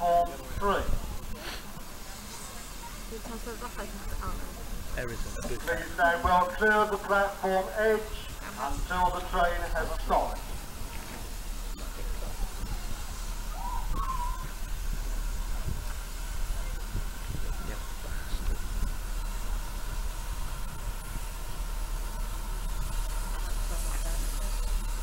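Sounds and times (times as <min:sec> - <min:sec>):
steam hissing: 0:00.0 - 0:25.0
steam locomotive running slowly: 0:00.0 - 0:25.0.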